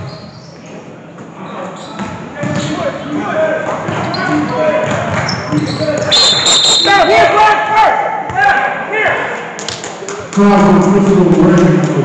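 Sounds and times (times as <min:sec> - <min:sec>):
voices shouting in a gymnasium: 0:01.4 - 0:09.5.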